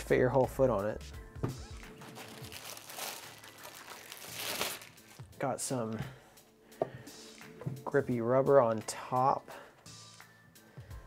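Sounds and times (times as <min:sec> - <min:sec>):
soft background music: 0:00.0 - 0:11.0
plastic packaging crinkling: 0:01.9 - 0:05.2.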